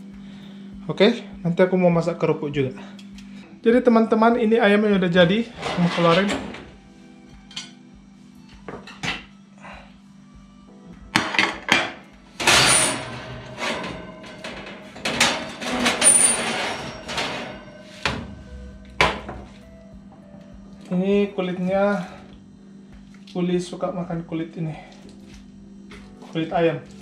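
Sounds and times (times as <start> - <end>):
faint steady hum: 0.0 - 5.6, 11.7 - 27.0
oven tray clattering on rack: 5.6 - 6.7, 11.2 - 19.6.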